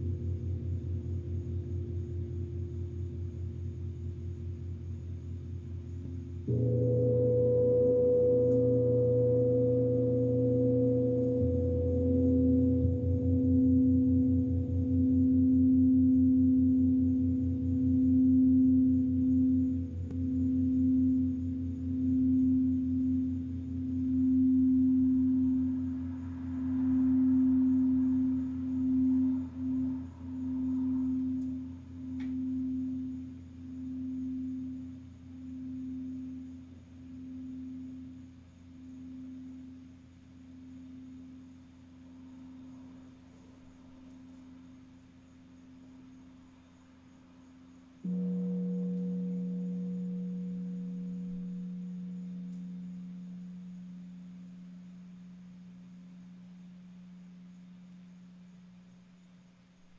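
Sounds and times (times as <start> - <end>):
crystal singing bowl tone: 0.0 - 59.9.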